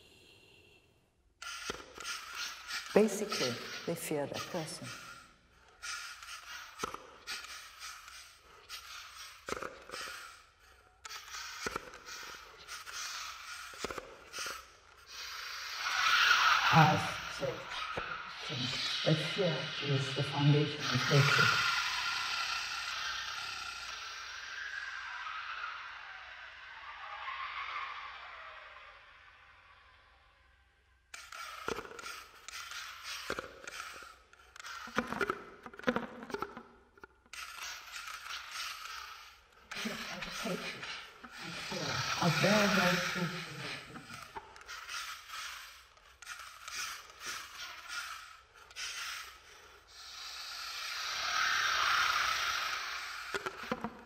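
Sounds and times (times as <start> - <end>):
electronic hissing noise: 37.6 - 45.6.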